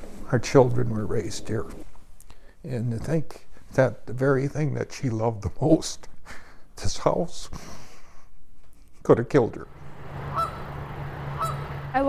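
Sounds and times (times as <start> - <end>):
steady low hum: 0.0 - 12.0
geese honking: 10.0 - 12.0.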